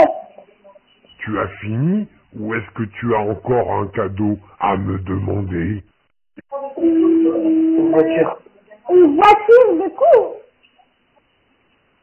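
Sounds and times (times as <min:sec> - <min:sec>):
child's voice over telephone: 0:06.5 - 0:10.5.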